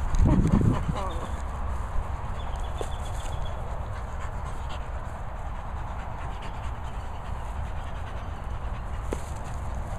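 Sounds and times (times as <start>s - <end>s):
dog breathing hard: 0.2s - 9.9s.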